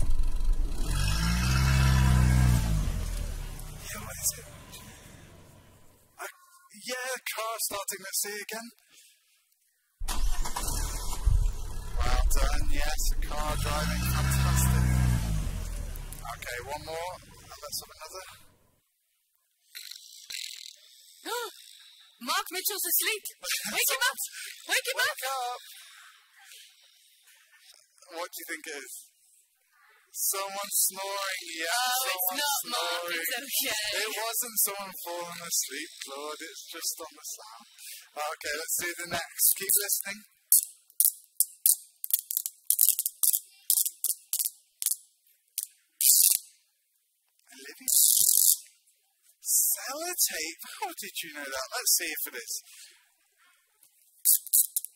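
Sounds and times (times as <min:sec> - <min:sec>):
snoring sound effect: 0:00.7 - 0:05.5, 0:13.2 - 0:17.5.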